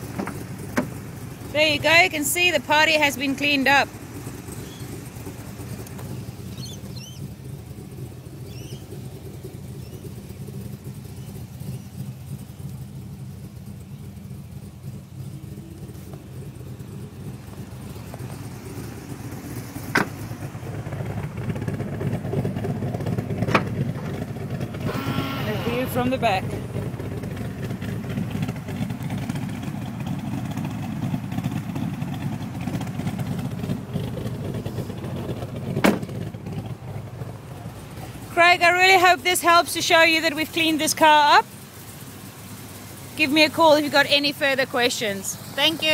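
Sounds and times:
car engine idling: 0.0s - 45.9s.

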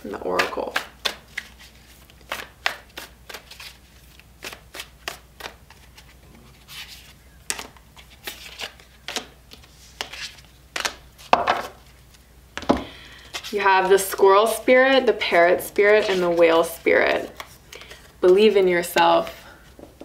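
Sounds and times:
cards shuffled by hand: 0.2s - 14.1s, 15.8s - 19.0s.

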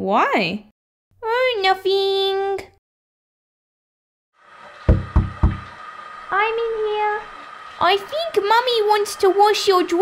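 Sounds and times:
knocks on a door: 4.9s - 5.7s.

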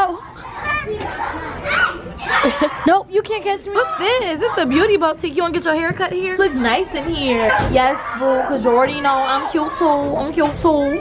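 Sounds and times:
children playing: 0.0s - 11.0s.

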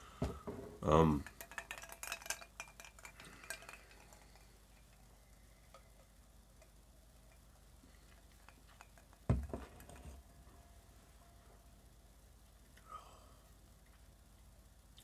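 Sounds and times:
glass clinking: 1.1s - 5.0s, 8.3s - 10.7s
person sipping: 2.8s - 6.1s
breathy exhale: 12.8s - 13.5s.

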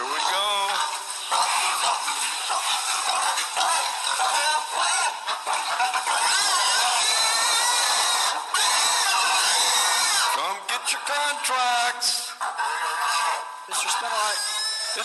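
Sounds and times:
pigs squealing and grunting: 0.0s - 15.0s.

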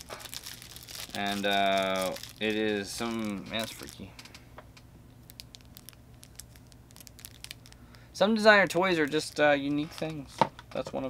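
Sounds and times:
plastic wrap crackling: 0.0s - 4.4s, 5.2s - 10.4s
low steady hum: 0.0s - 11.0s.

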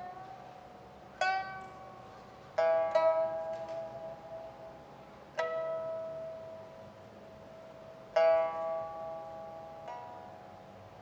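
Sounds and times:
plucked lute notes: 0.0s - 11.0s.

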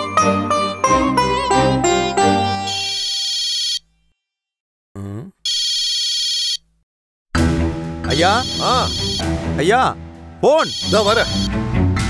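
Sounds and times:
phone ringing: 2.5s - 3.9s, 5.5s - 6.6s, 8.2s - 9.2s, 10.6s - 11.5s.

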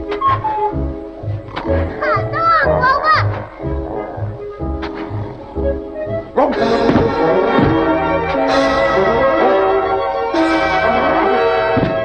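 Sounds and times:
orchestral cartoon music: 0.0s - 12.0s.

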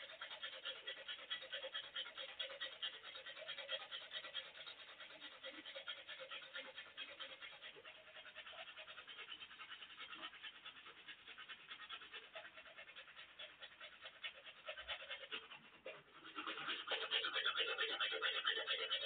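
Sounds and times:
toothbrush scrubbing teeth: 0.0s - 19.0s.

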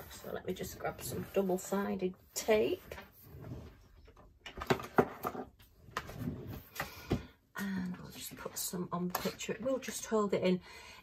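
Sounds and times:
knocks and clicks of handling: 4.1s - 7.3s.

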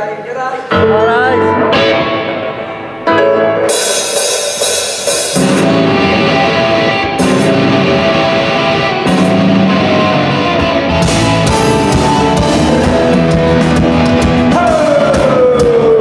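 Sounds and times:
electric guitars: 0.6s - 16.0s
drum kit with cymbals: 3.7s - 8.3s, 8.9s - 9.9s, 10.8s - 16.0s.

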